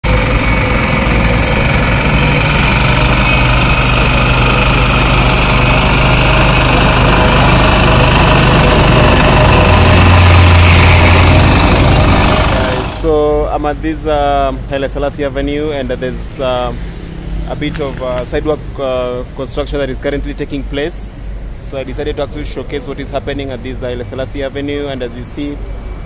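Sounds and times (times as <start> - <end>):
vibratory roller rattling drone: 0.0 - 13.3.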